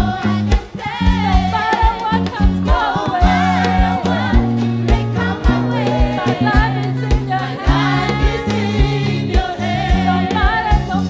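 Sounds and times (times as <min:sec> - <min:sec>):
singers with a band: 0:00.0 - 0:11.0.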